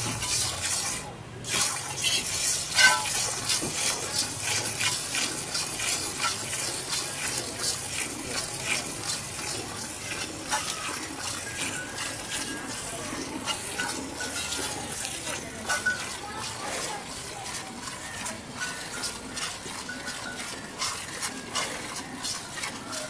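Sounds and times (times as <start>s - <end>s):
milk squirting into a pail: 0.0s - 23.0s.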